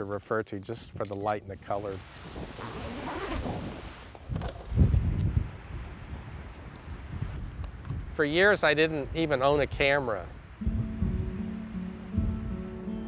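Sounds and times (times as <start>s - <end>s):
wind buffeting microphone: 2.0s - 12.9s.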